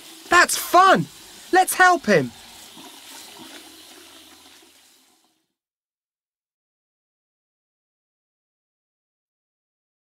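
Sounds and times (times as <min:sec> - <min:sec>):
running splashing water: 0:00.0 - 0:05.4.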